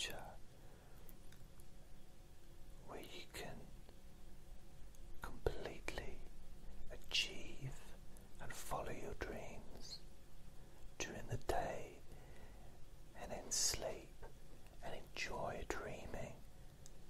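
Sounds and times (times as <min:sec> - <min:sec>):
person whispering: 0:00.0 - 0:00.4, 0:02.8 - 0:03.8, 0:05.2 - 0:10.1, 0:11.0 - 0:12.1, 0:13.1 - 0:16.4.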